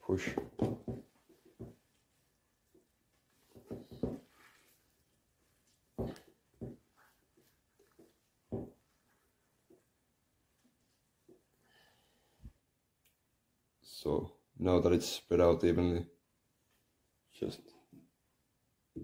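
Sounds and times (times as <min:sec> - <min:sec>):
faint wooden knocks and rubs: 0:02.6 - 0:04.8, 0:05.9 - 0:09.9.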